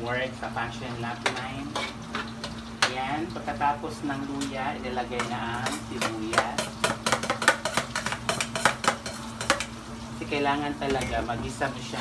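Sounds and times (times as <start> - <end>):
metal spatula scraping a wok: 5.1 - 9.7.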